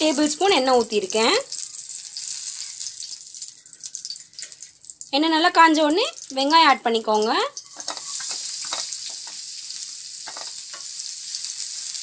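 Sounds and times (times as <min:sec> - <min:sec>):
person speaking: 0:05.2 - 0:07.6.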